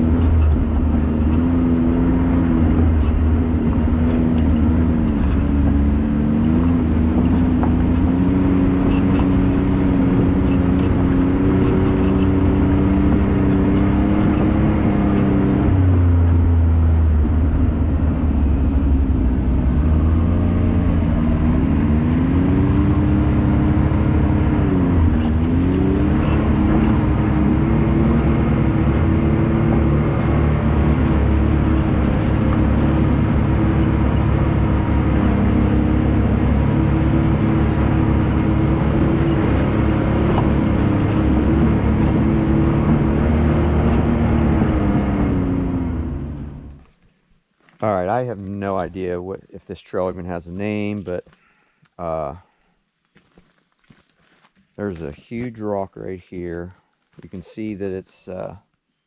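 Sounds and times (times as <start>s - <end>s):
vehicle engine running: 0.0s - 58.8s.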